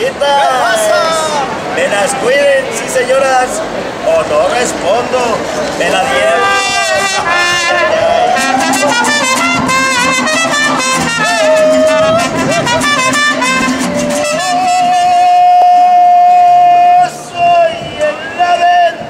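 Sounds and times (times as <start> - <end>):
mariachi trumpets: 6.0 - 18.6
strummed guitars: 8.4 - 15.6.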